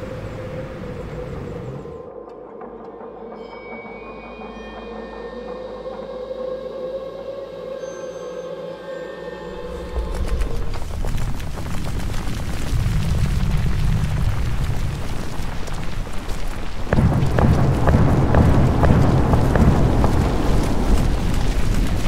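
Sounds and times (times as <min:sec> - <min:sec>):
volcanic eruption rumbling: 0:09.6 - 0:22.0
sharp cracks and pops: 0:09.7 - 0:22.0.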